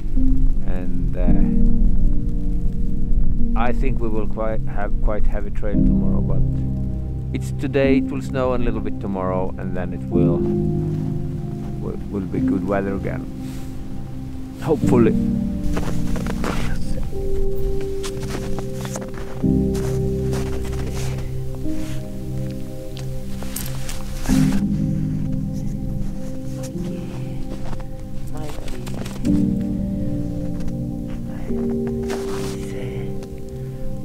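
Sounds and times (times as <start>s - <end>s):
slow sustained chords music: 0.0s - 34.0s
faint clicks and rustles: 12.4s - 33.6s.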